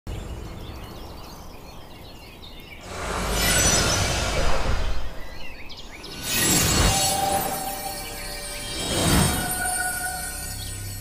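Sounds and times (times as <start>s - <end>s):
birds chirping: 0.1s - 11.0s.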